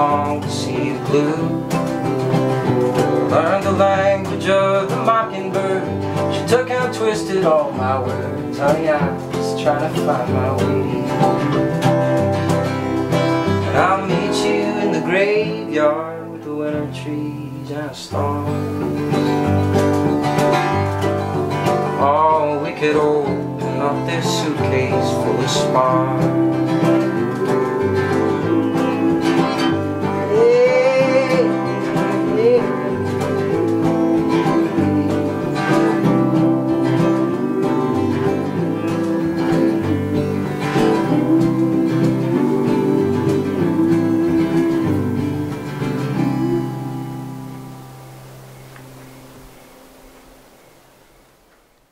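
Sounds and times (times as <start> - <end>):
strummed acoustic guitar: 0.0 - 50.6.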